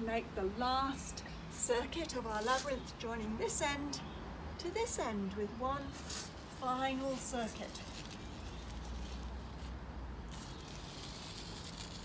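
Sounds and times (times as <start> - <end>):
chalk scraping on concrete: 7.0 - 12.0.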